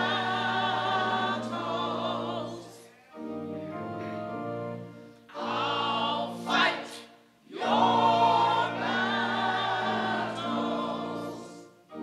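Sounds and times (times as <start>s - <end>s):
church choir singing: 0.0s - 12.0s
organ accompaniment: 0.0s - 12.0s.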